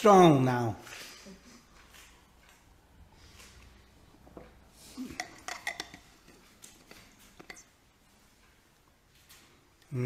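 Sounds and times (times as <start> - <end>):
metallic clinks of lid: 5.1 - 7.7.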